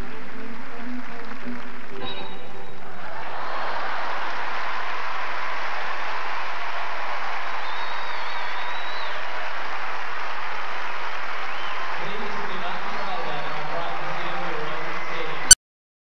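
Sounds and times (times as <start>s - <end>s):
crowd applauding: 0.0s - 15.4s.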